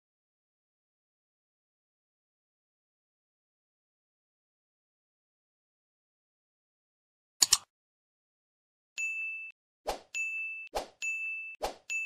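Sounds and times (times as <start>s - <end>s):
short sharp clicks: 7.4s - 7.7s.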